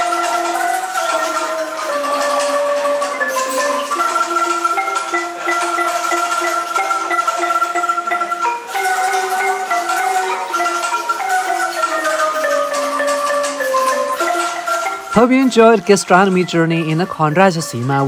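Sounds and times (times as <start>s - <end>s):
wooden xylophone melody: 0.0s - 18.0s.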